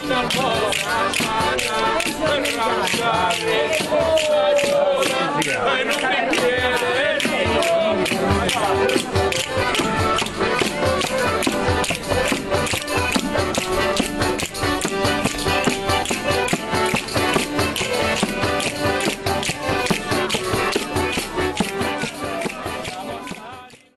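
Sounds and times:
sustained melody instrument: 0.0 - 23.6.

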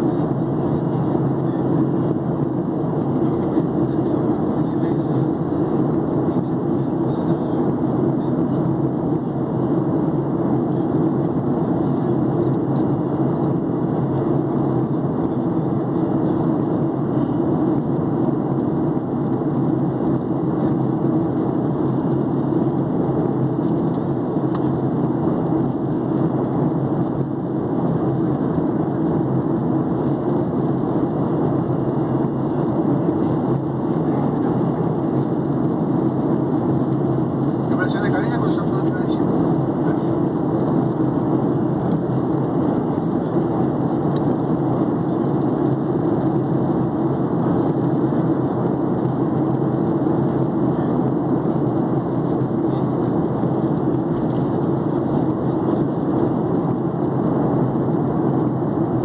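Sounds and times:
airplane cabin engine rumble: 0.0 - 59.0.

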